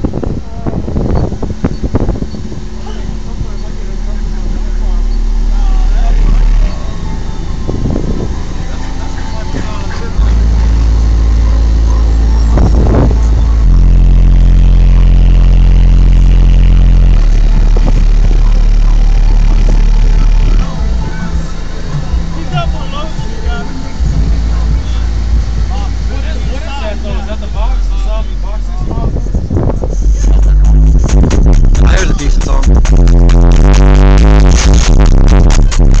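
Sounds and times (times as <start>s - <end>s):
bass-heavy music in car: 0.0s - 36.0s.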